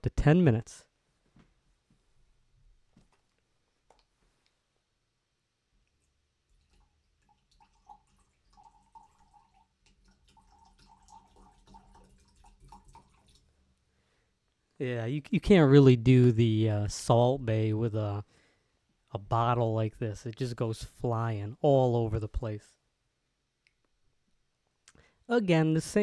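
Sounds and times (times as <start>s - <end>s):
juice pouring into a glass: 6.5s - 13.5s.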